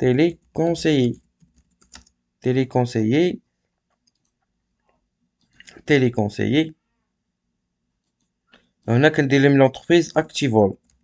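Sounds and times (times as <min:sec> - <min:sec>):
computer keyboard keystrokes: 0:01.4 - 0:02.1
person speaking word: 0:05.7 - 0:06.7.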